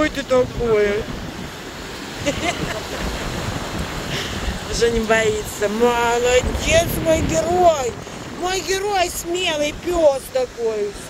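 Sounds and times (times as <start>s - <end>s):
ocean surf on beach: 0.0s - 11.0s
wind noise on microphone: 0.0s - 11.0s.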